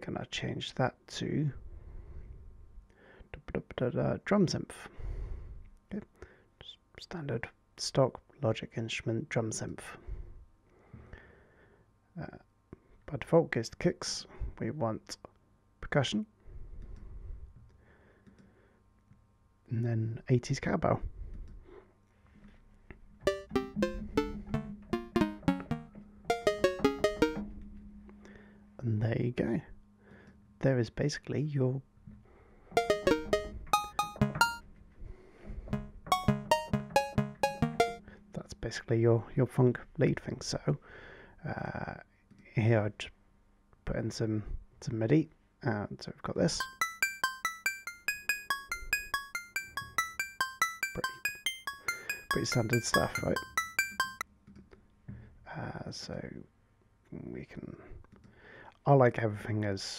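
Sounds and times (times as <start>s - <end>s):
synthesized cowbell melody: 23.3s - 27.4s, 32.8s - 34.6s, 35.8s - 38.0s, 46.6s - 54.2s.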